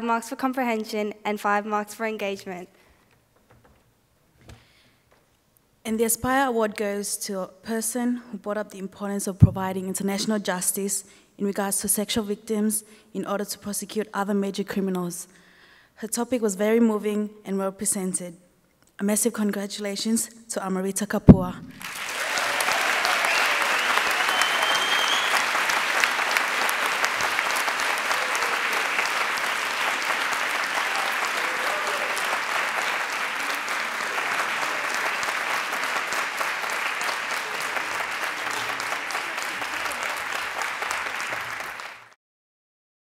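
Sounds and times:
audience applauding: 21.8s - 42.2s.

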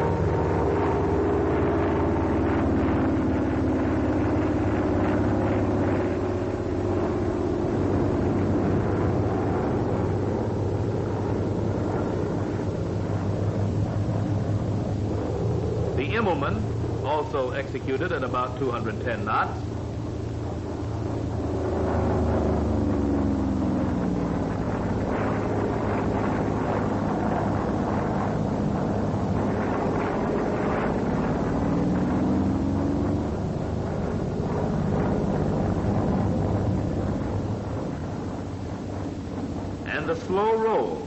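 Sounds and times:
propeller plane engine droning: 0.0s - 41.0s.

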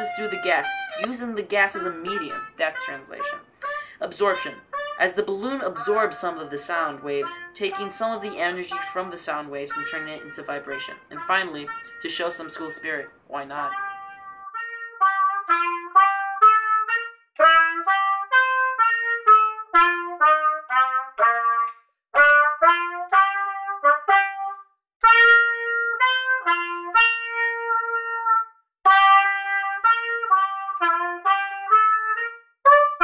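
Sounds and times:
solo trumpet melody: 0.0s - 33.0s.

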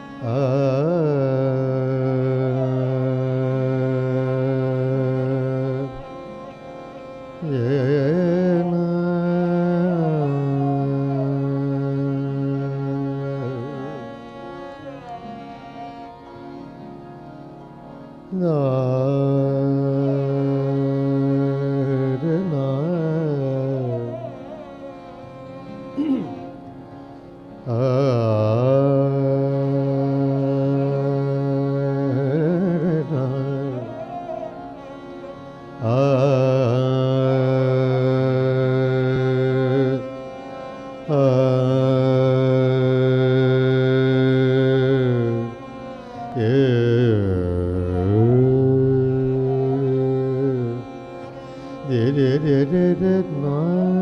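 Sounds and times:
man singing a long note: 0.0s - 6.2s, 7.4s - 15.4s, 18.3s - 25.1s, 26.0s - 26.6s, 27.6s - 54.0s
soft instrumental accompaniment: 0.0s - 54.0s.

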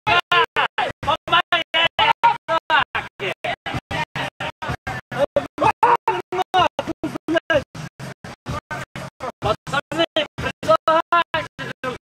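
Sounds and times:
music with chopped pulsing vocal: 0.0s - 12.0s.

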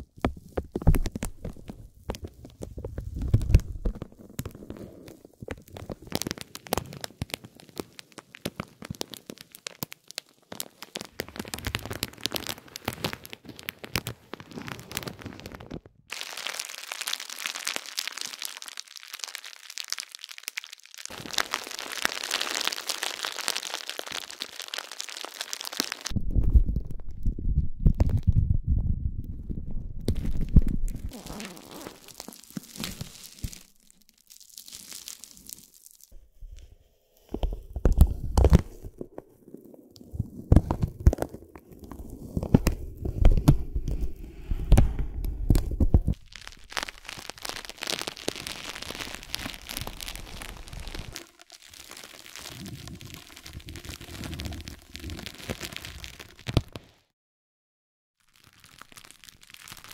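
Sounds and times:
hands rubbing crinkly plastic: 0.0s - 28.5s, 29.5s - 57.0s, 58.2s - 59.9s
spiked roller crackling plastic film: 6.0s - 26.1s, 46.1s - 56.9s.

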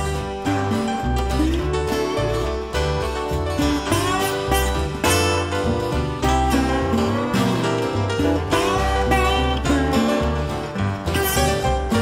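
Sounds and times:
bass line: 0.0s - 12.0s
blues guitar lines: 0.0s - 12.0s.

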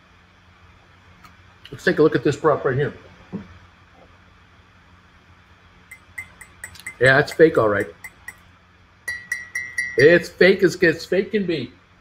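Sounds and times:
finger tapping ceramic mug: 5.9s - 8.4s, 9.1s - 10.2s.

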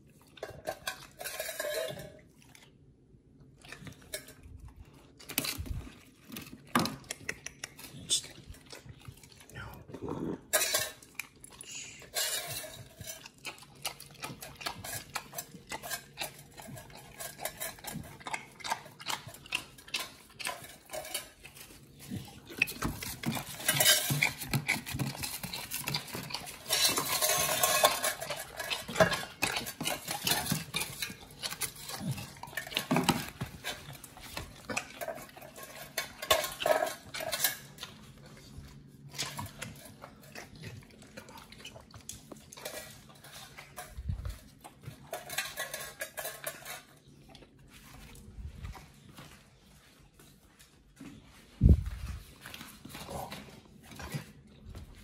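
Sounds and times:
dogs licking metal plates: 0.0s - 9.7s, 10.4s - 51.5s, 52.1s - 55.0s.

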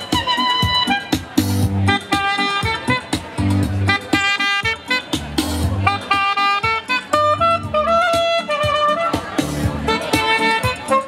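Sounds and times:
bass and drums backing: 0.0s - 11.0s
saxophone playing jazzy melody: 0.0s - 11.0s.

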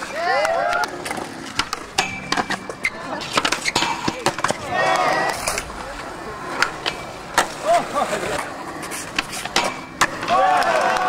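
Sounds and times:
skateboard wheels rolling: 0.0s - 11.0s
skateboards clacking on ground: 0.0s - 11.0s
voices calling out: 0.0s - 11.0s.

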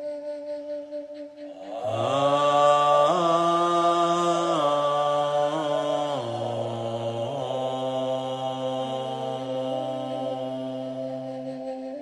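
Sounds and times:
man chanting in a deep voice: 1.5s - 12.0s.

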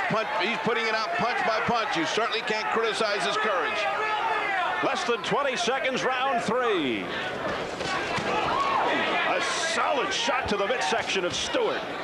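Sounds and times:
indistinct shouts: 0.0s - 5.2s
crowd voices: 0.0s - 12.0s.

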